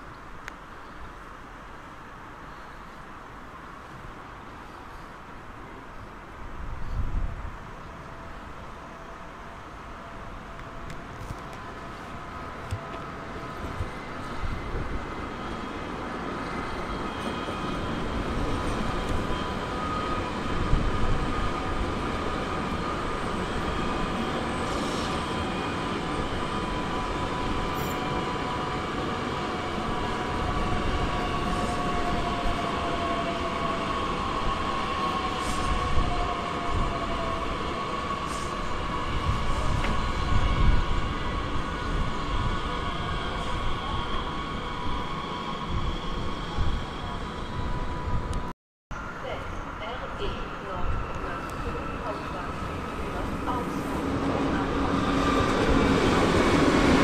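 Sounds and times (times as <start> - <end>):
electric train rumbling: 0.0 - 57.0.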